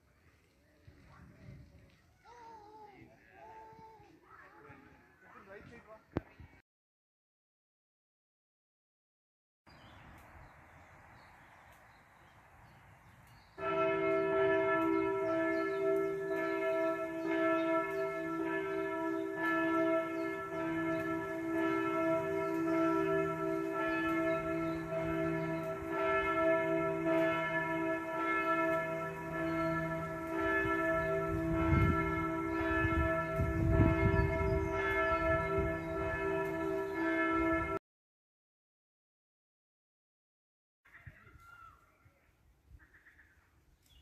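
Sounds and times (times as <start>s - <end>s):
church bells ringing: 13.6s - 37.8s.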